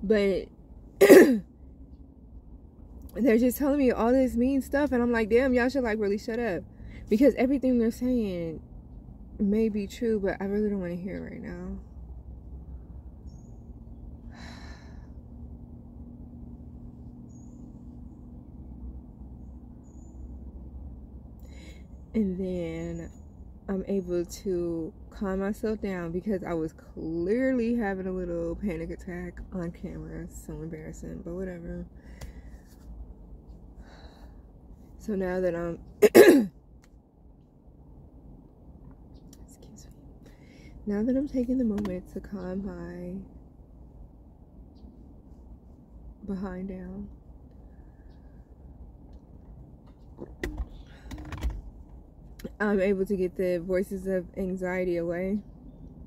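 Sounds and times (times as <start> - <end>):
low car cabin hum: 0.0 - 56.0.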